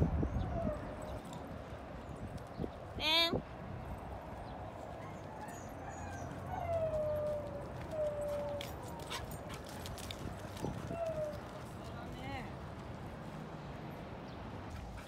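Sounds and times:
dogs play-wrestling: 4.8 - 11.9.

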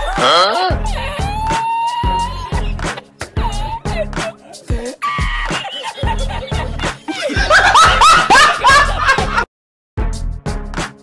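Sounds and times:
background music with low beat: 0.0 - 9.4, 10.0 - 11.0
high-pitched laughter bursts: 5.0 - 9.3.

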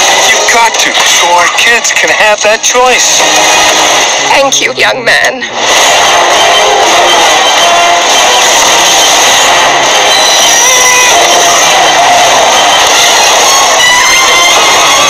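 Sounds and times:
action sound effects: 0.0 - 4.5, 5.1 - 15.0
film trailer music: 2.8 - 4.4, 5.6 - 15.0.

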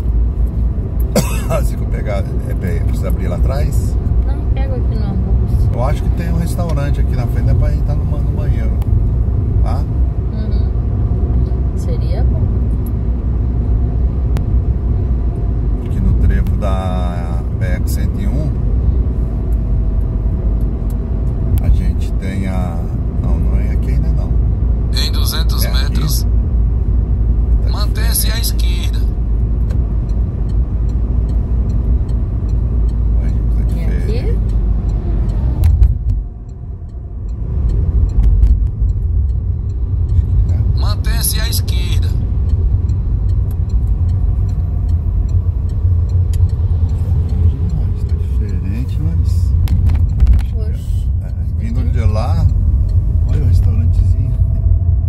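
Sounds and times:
tyre and engine rumble: 0.0 - 55.0.

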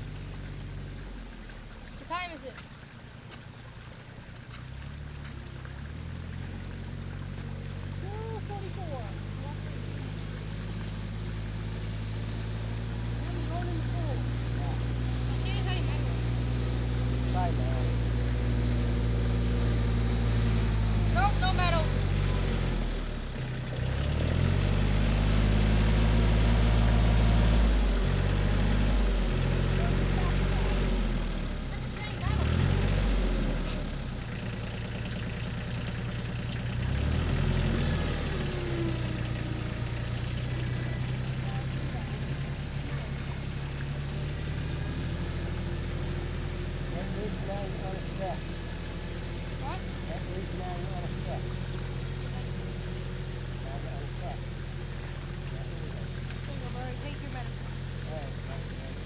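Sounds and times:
tractor engine revving under load: 8.0 - 59.0.

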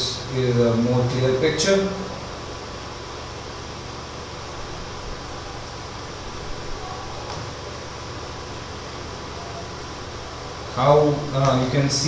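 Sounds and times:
background hiss: 0.0 - 12.0
faint low hum: 0.0 - 12.0.

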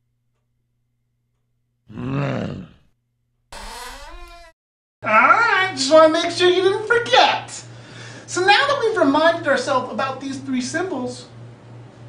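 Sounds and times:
deep growling grunt: 1.9 - 2.9.

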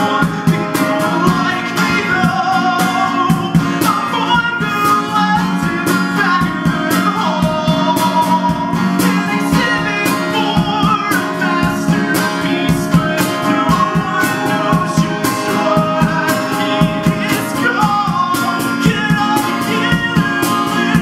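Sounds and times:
cajon struck by hand: 0.0 - 21.0
man singing: 0.0 - 21.0
strummed acoustic guitar: 0.0 - 21.0.

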